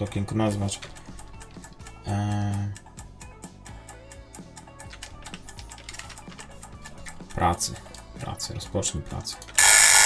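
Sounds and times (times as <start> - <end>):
quiet background music: 0.0 - 10.0
keyboard keys tapping: 4.6 - 7.1.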